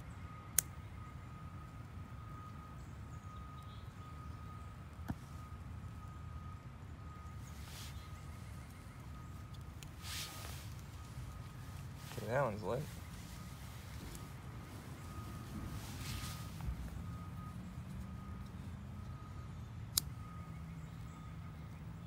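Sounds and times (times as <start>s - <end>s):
distant city rumble: 0.0s - 22.0s
faint steady high tone: 0.0s - 22.0s.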